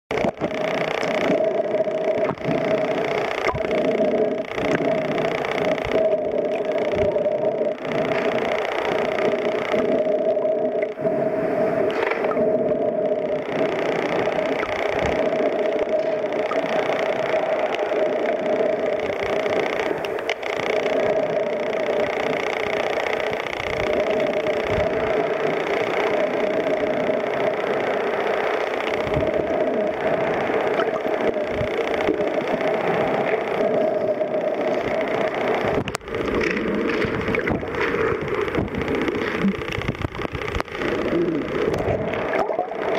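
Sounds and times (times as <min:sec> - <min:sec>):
bubbling water: 0:00.1 - 0:25.4, 0:28.8 - 0:42.9
boat engine hum underwater: 0:00.1 - 0:42.9.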